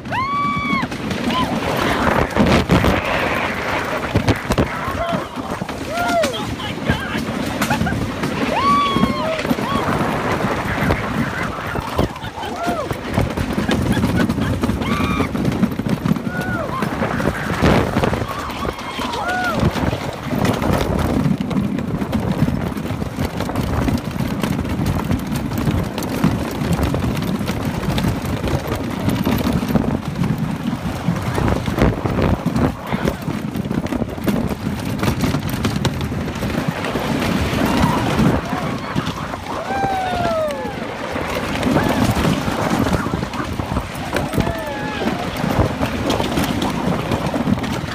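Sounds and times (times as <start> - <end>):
roller coaster rumbling and rattling: 0.0 - 47.9
wind on microphone: 0.0 - 47.9.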